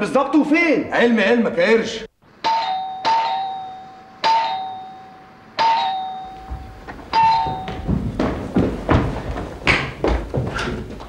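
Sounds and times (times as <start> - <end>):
two-tone doorbell chime: 2.4 - 7.9.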